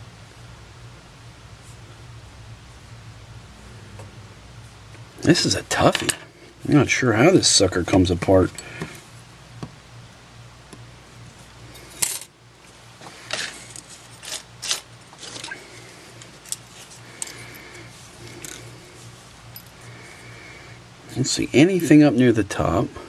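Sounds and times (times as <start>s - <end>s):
low hum: 0.0s - 21.6s.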